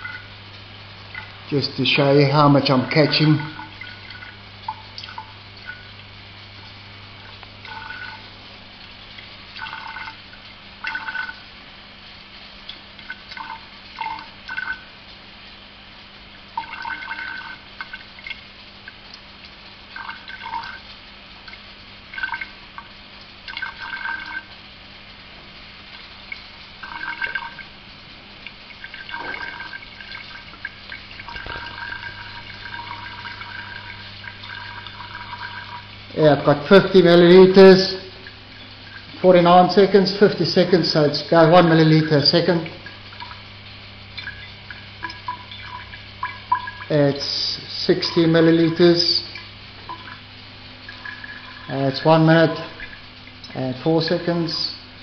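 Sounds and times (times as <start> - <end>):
low steady hum: 0.0 - 55.0
liquid dripping into glass: 2.8 - 5.9, 7.3 - 8.2, 9.6 - 10.2, 10.8 - 11.4, 12.7 - 14.9, 16.6 - 19.2, 20.0 - 20.9, 21.5 - 24.5, 26.3 - 27.7, 28.4 - 36.0, 44.1 - 47.0, 49.3 - 50.3, 50.9 - 51.8.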